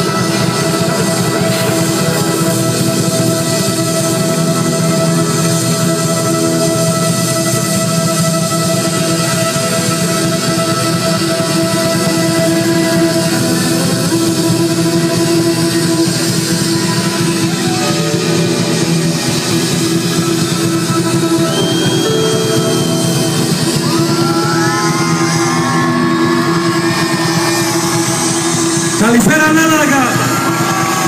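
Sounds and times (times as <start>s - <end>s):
live band playing instrumental: 0.0s - 31.0s
sliding high notes: 0.0s - 31.0s.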